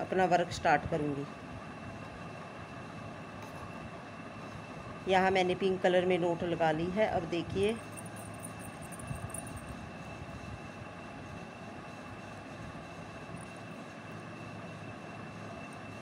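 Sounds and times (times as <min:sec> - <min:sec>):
steady background hum: 0:00.0 - 0:16.0.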